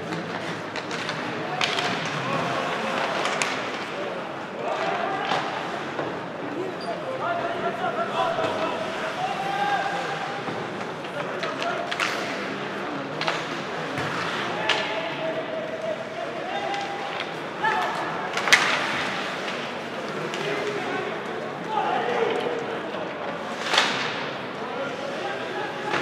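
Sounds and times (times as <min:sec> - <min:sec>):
hockey sticks and puck clacking: 0:00.0 - 0:06.4, 0:08.3 - 0:26.0
spectators' voices and calls: 0:00.0 - 0:26.0.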